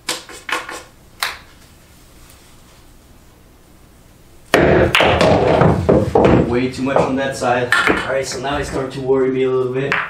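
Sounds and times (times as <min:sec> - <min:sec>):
pool balls clacking together: 0:04.6 - 0:09.1.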